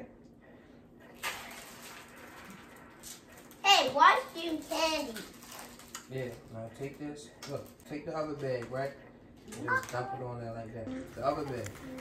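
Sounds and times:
child's voice: 3.6s - 5.3s, 9.5s - 12.0s.

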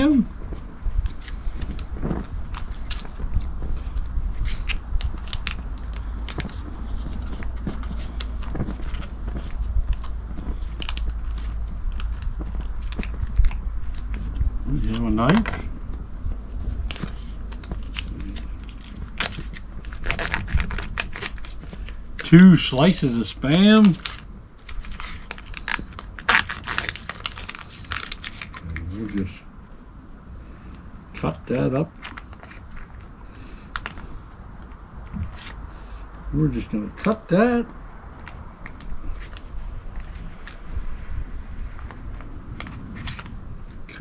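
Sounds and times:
low rumble: 0.0s - 26.1s
clicks crinkles and scrapes: 0.1s - 29.3s, 32.0s - 33.1s, 33.7s - 35.6s.

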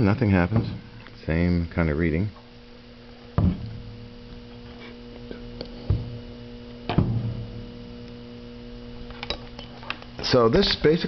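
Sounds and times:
electrical hum: 0.0s - 11.0s
knocks: 3.4s - 3.8s, 6.9s - 7.5s.

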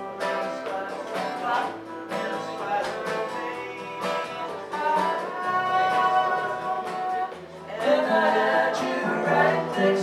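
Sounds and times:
acoustic guitar: 0.0s - 10.0s
person singing: 0.0s - 10.0s.

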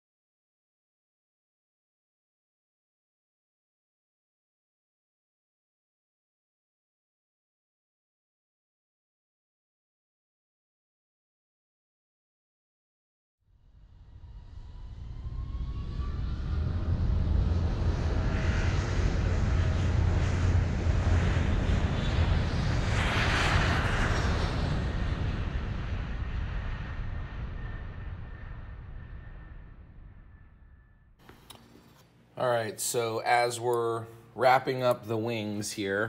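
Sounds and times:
airplane engine noise: 14.0s - 36.0s.

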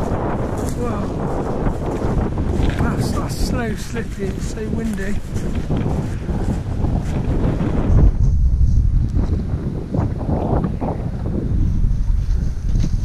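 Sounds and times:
strong wind buffeting microphone: 0.0s - 13.0s.

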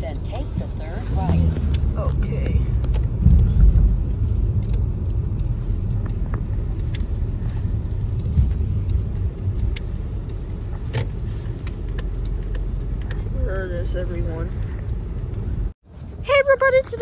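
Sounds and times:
car road and engine rumble: 0.0s - 17.0s.

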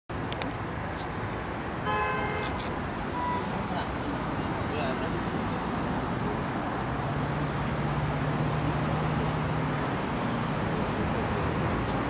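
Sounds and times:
distant road traffic rumble: 0.1s - 12.0s
vehicle horn: 1.8s - 2.6s.

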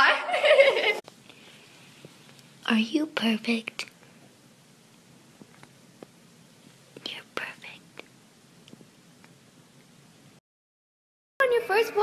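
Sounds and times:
person whispering: 7.0s - 8.0s.

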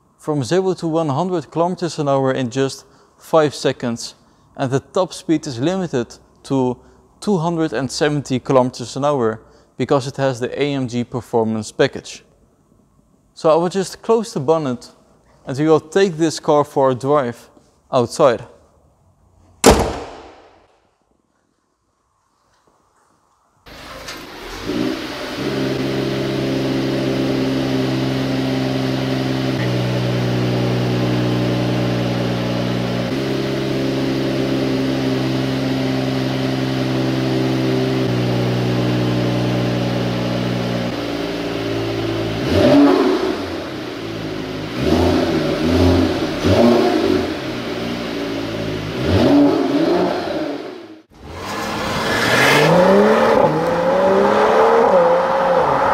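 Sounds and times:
car engine idling: 23.7s - 49.1s
car engine accelerating: 23.7s - 55.9s
engine revving in quick blips: 40.0s - 55.9s.

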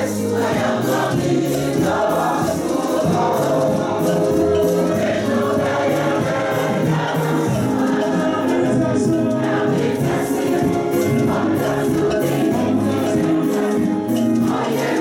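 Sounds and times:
congregation singing: 0.0s - 15.0s
light percussion beat: 0.0s - 15.0s.

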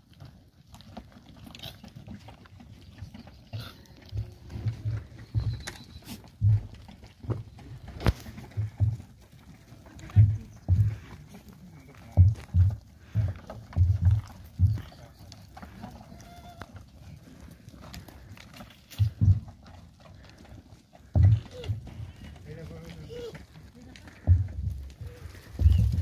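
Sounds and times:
hooves shuffling on dirt: 0.0s - 26.0s
faint goat calls: 14.6s - 16.8s
low thumps on microphone: 24.3s - 26.0s.

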